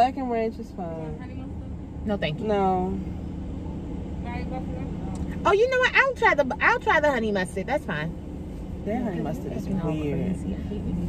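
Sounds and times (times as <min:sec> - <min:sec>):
car engine idling: 0:00.0 - 0:11.0.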